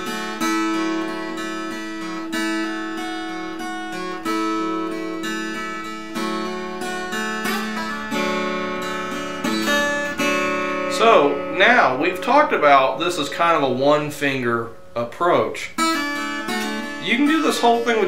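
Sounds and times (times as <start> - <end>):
acoustic guitar fingerpicked: 0.0 - 13.6, 15.8 - 18.0.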